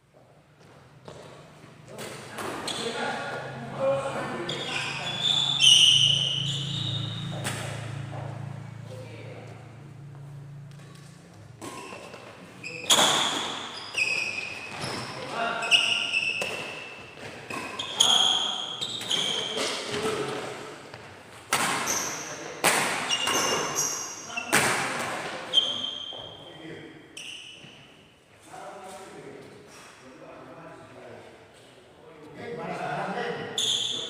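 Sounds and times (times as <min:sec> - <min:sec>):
shoes squeaking on court floor: 0:00.2 - 0:08.6, 0:10.1 - 0:26.5, 0:27.2 - 0:28.2, 0:33.5 - 0:34.0
racket striking shuttlecock: 0:07.3 - 0:08.0.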